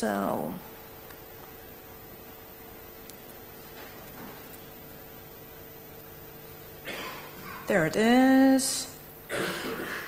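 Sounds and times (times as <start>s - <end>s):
low hum from sound system: 0.0s - 10.0s.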